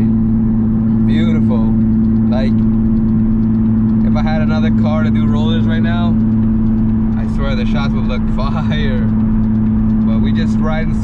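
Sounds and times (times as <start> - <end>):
car engine and road drone: 0.0 - 11.0.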